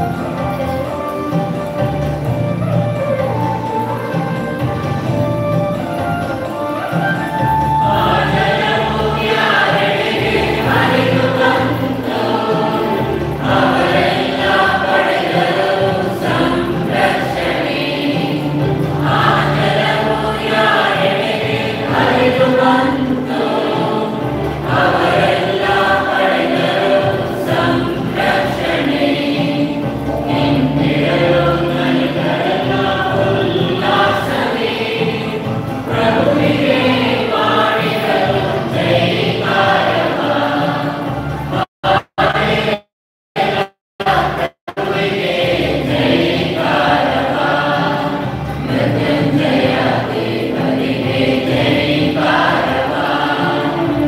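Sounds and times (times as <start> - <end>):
choir singing a hymn: 0.0 - 42.8, 43.4 - 54.0
instrumental accompaniment: 0.0 - 54.0.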